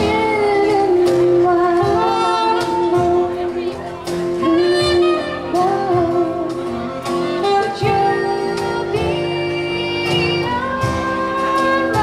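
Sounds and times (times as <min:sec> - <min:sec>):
saxophone melody: 0:00.0 - 0:12.0
soft cajon beats: 0:00.0 - 0:12.0.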